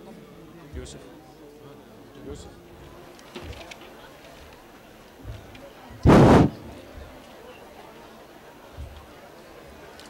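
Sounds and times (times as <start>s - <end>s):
loud sudden noise burst: 6.0s - 6.8s.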